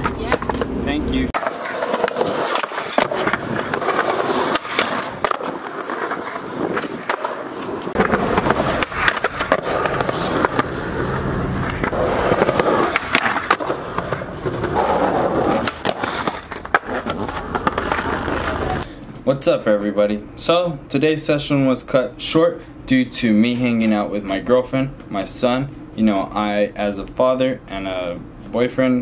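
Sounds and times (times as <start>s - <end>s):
skateboard clacking on pavement: 0.0s - 0.7s, 1.4s - 18.8s
skateboard wheels rolling on concrete: 0.0s - 18.9s.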